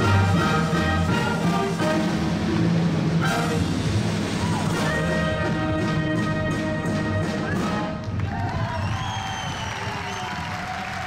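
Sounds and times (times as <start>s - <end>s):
wind band holding a chord: 0.0s - 7.3s.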